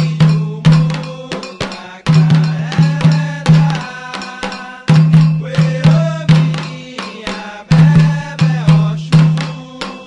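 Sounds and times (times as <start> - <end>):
hand drums in driving rhythm: 0.0 - 10.0
metal bell ringing: 0.0 - 10.0.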